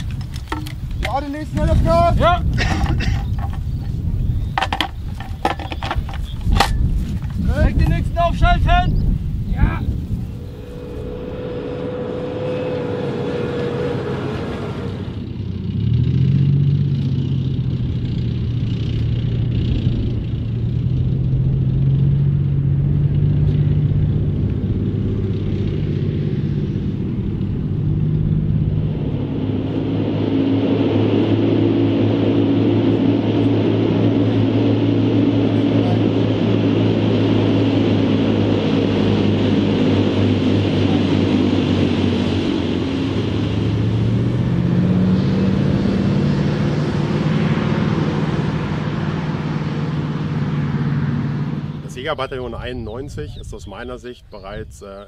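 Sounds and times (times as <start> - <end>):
armoured vehicle diesel engines: 0.0 - 55.0.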